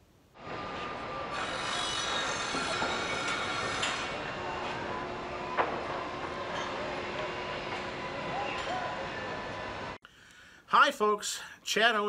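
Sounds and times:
rail mechanical noise: 0:00.4 - 0:10.0
high metallic squeals: 0:00.7 - 0:05.0.

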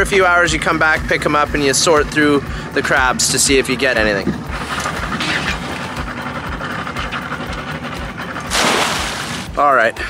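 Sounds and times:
trap splashing into water: 0:08.5 - 0:09.6.

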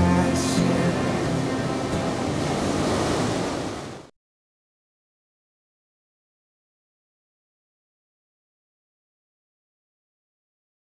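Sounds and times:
ocean waves breaking: 0:00.0 - 0:04.1.

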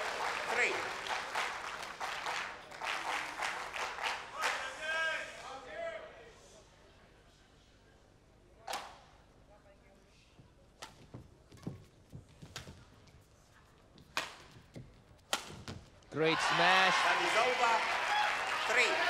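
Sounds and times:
crowd applauding: 0:00.0 - 0:04.8, 0:16.2 - 0:19.0
crowd cheering: 0:00.0 - 0:05.4, 0:16.2 - 0:19.0
racket striking shuttlecock: 0:15.3 - 0:15.8.

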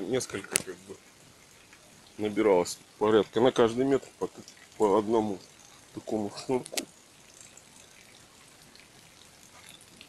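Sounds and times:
low steady hiss: 0:00.0 - 0:10.0
water drops ticking: 0:03.2 - 0:10.0.

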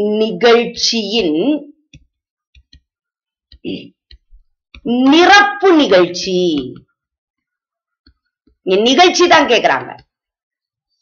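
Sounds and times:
woman speaking: 0:00.0 - 0:01.8, 0:03.6 - 0:04.0, 0:04.8 - 0:06.9, 0:08.6 - 0:10.1
stylus tapping on tablet: 0:01.8 - 0:05.2, 0:06.2 - 0:08.7, 0:09.9 - 0:10.7.

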